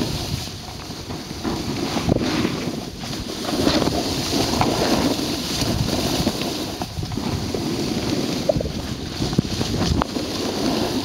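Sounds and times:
skis sliding on snow: 0.0s - 11.0s
wind buffeting microphone: 0.0s - 11.0s.

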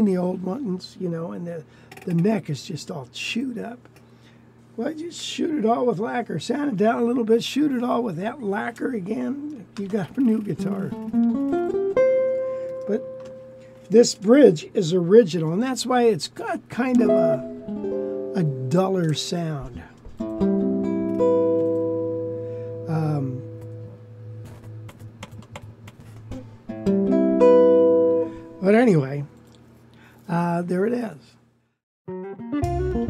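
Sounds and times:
electric guitar single notes: 10.8s - 13.9s, 16.9s - 25.2s.

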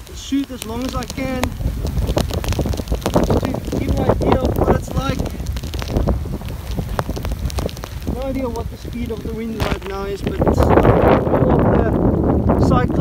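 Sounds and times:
heavy rain falling: 0.0s - 13.0s
wind buffeting microphone: 0.0s - 13.0s.

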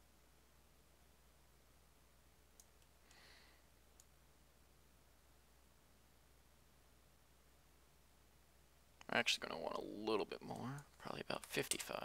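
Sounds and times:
faint steady hum: 0.0s - 12.0s
computer mouse clicks: 2.5s - 3.2s, 3.9s - 4.2s.

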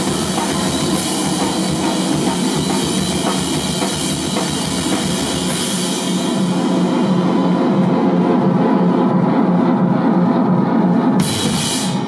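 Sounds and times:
drum kit with cymbal wash: 0.0s - 12.0s.

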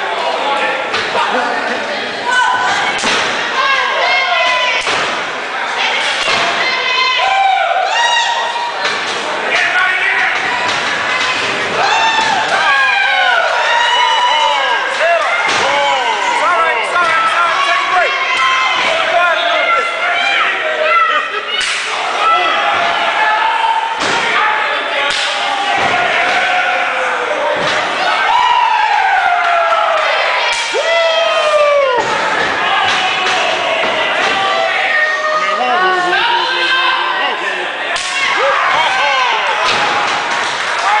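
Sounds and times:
people shouting: 2.2s - 41.0s.

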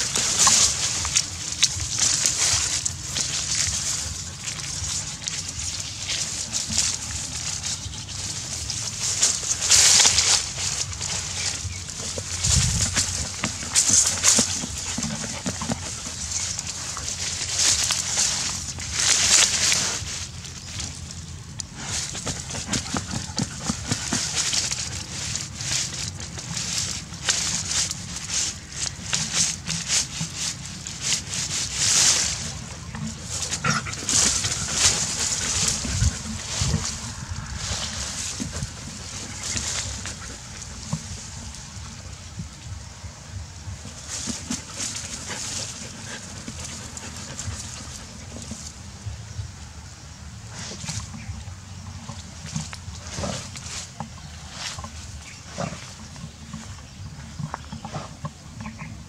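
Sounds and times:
dog digging in dry grass: 0.0s - 59.0s
rustling and scratching: 0.0s - 59.0s.

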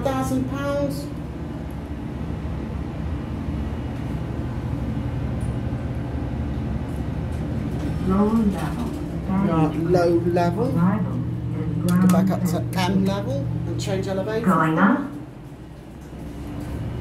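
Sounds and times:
elevator hum and rumble: 0.0s - 17.0s.

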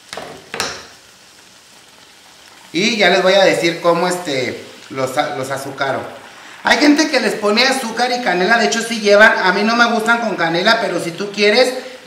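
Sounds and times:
dough sizzling in hot oil: 0.0s - 12.0s
oil crackles: 0.0s - 12.0s.

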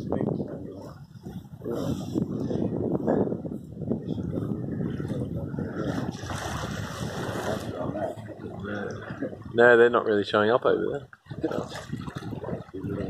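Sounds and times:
wind buffeting microphone: 0.0s - 13.0s
water washing along boat hull: 4.0s - 13.0s.

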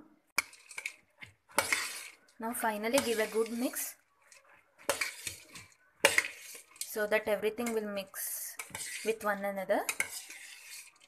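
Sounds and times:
puffed rice scraping rustle: 0.6s - 2.3s, 4.8s - 6.9s, 10.1s - 11.0s.

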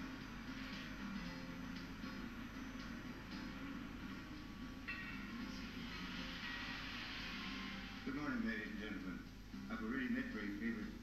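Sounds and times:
background music from television: 0.0s - 11.0s.

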